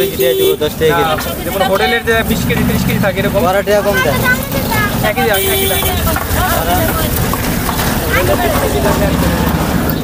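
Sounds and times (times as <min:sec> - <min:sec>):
market and traffic rumble: 0:00.0 - 0:10.0.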